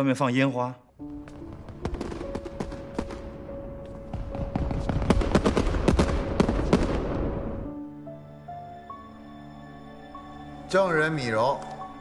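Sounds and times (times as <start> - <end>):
background music: 0.0 - 12.0
fireworks popping and crackling: 1.2 - 3.3, 4.1 - 7.4.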